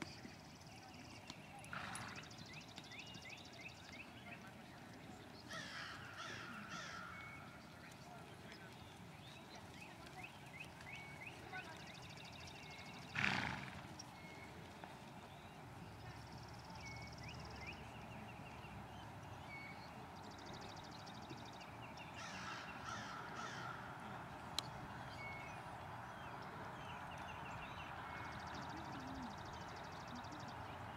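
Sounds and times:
crow cawing: 0:22.2 - 0:23.8.

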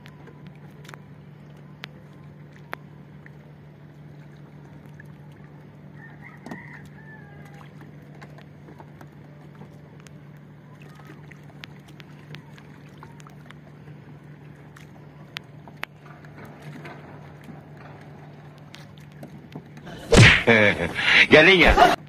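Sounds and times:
rooster crowing: 0:06.0 - 0:07.7
steady low hum: 0:19.8 - 0:22.0.

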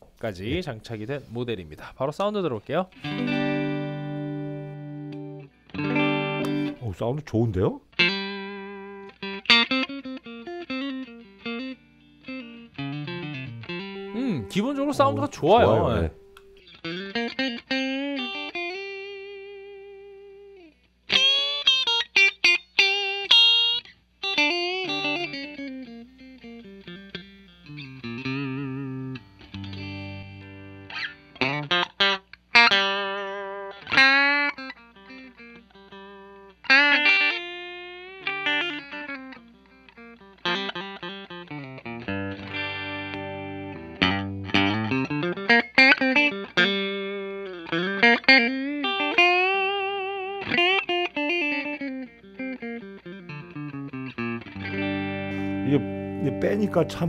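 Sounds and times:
clean electric guitar: 0:02.9 - 0:07.2, 0:07.9 - 0:57.0.

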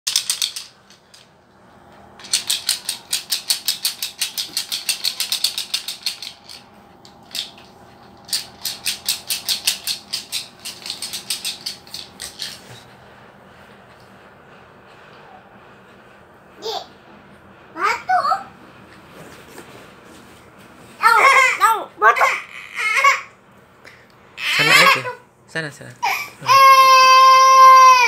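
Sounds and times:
plastic toy rattling: 0:00.1 - 0:01.4, 0:02.2 - 0:12.8.

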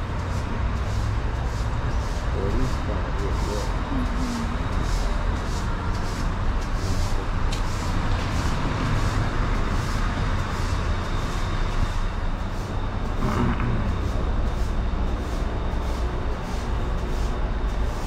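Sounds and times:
passing traffic rumble: 0:00.0 - 0:18.0.

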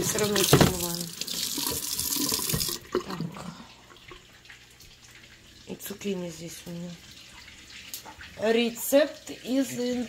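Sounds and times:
tap running into steel sink: 0:01.6 - 0:02.8.

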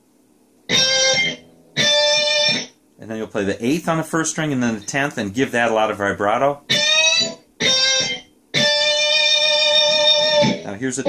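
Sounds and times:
electric guitar lick: 0:00.7 - 0:02.8, 0:06.7 - 0:10.8.

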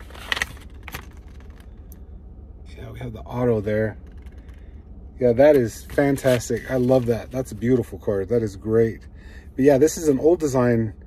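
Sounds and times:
paper and plastic card crinkling: 0:00.0 - 0:01.8, 0:05.6 - 0:07.8.

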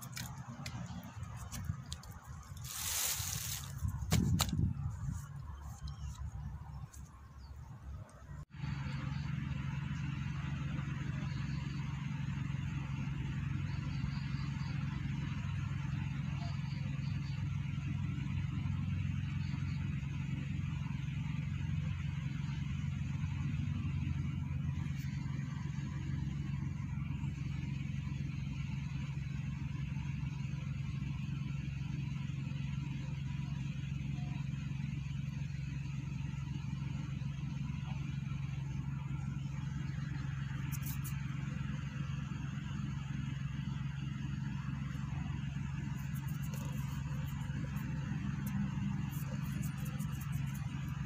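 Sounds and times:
distant traffic drone: 0:00.0 - 0:51.0.

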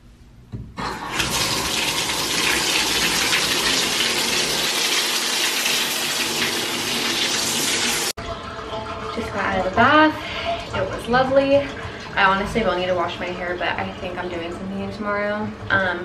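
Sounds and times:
water running into bathtub: 0:00.8 - 0:16.0.

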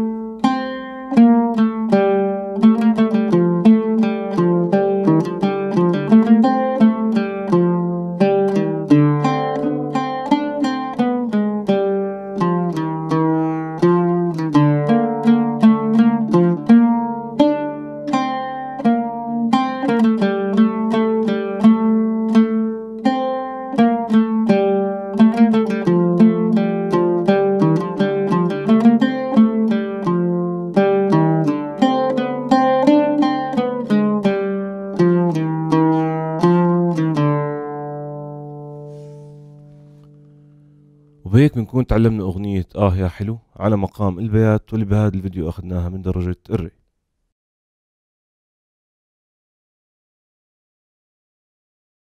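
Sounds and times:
oud plucked melody: 0:00.0 - 0:41.4.

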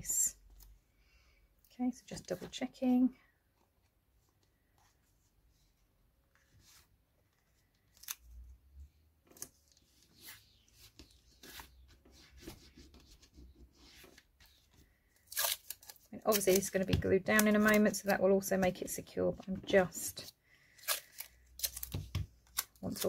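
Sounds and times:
masking tape peeled and pressed: 0:15.2 - 0:16.7.

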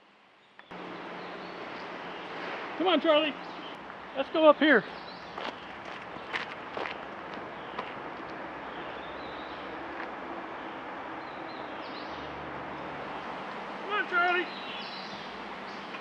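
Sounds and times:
outdoor background noise: 0:00.0 - 0:16.0
footsteps on gravel: 0:04.8 - 0:09.0.

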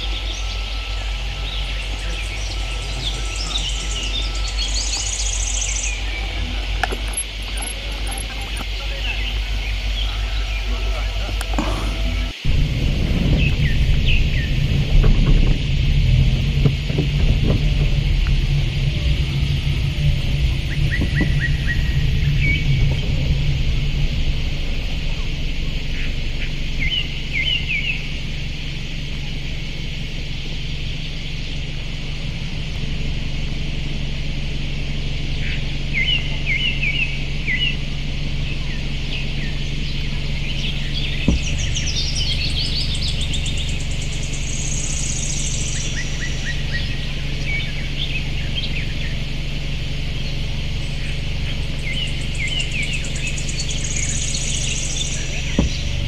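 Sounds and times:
birds chirping: 0:00.0 - 0:56.0
steady low hum: 0:00.0 - 0:56.0.

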